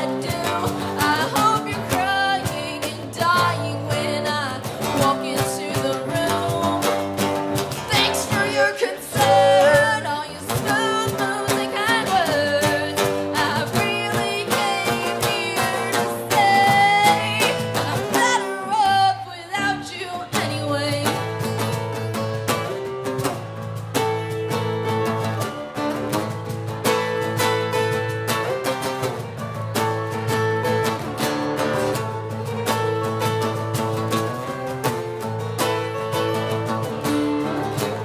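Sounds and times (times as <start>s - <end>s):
woman singing: 0.0s - 21.7s
strummed acoustic guitars: 0.0s - 38.0s.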